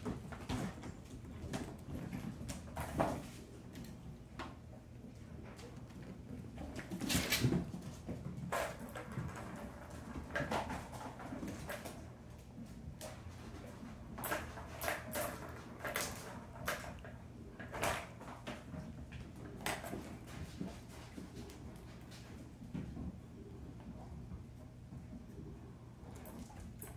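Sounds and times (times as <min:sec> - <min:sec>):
kittens' paws scrabbling on floor: 0:00.0 - 0:26.9.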